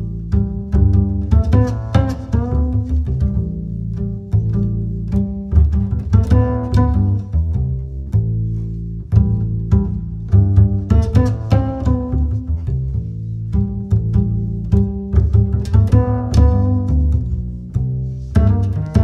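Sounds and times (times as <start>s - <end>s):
plucked string notes: 0.0s - 19.0s
sustained low bass line: 0.0s - 19.0s.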